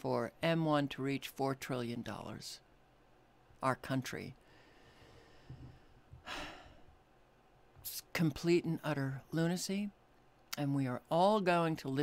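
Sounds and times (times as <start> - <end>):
man breathing: 4.4 - 7.0.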